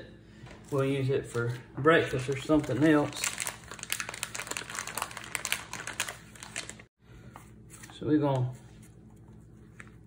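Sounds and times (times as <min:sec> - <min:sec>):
plastic packaging crinkling: 0:02.1 - 0:06.9.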